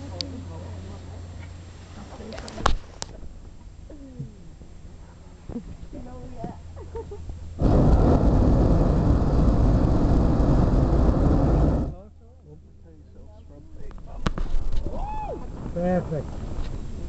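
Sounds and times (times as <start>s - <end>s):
propane burner blast: 7.5s - 12.1s, 14.0s - 17.0s.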